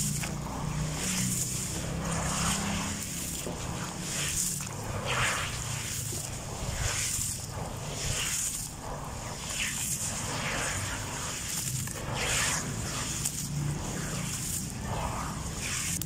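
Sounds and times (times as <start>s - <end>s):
wet sand splashing into muddy water: 0.0s - 16.0s.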